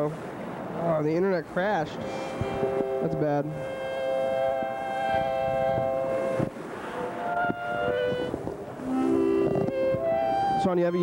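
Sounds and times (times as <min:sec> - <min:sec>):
held synthesizer chords: 0:01.8 - 0:11.0.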